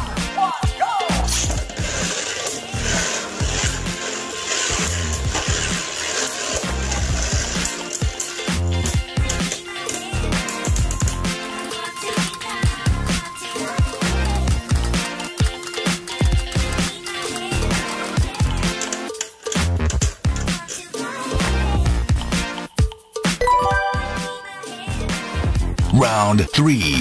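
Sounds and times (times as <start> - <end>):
background music with steady beat: 0.0 - 27.0
spinning tops clacking together: 1.4 - 12.8
spinning tops whirring: 1.4 - 19.7.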